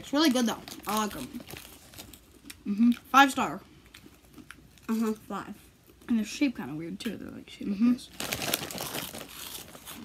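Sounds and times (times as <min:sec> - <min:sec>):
plastic crisp packet crinkling: 0:00.0 - 0:03.0, 0:08.1 - 0:10.0.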